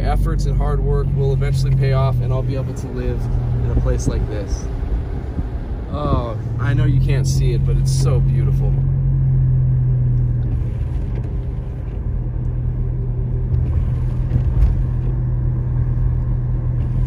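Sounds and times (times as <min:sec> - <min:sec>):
low car engine hum: 0:00.0 - 0:17.0
tyre and road rumble: 0:00.0 - 0:17.0.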